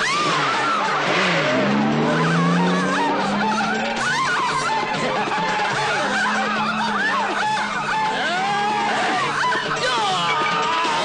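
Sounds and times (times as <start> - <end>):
film music: 0.0 - 11.0
man laughing: 2.6 - 9.2.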